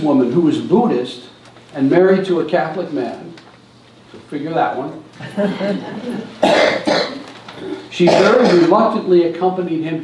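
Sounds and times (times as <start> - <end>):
person coughing: 6.4 - 8.8
person speaking: 7.1 - 9.8.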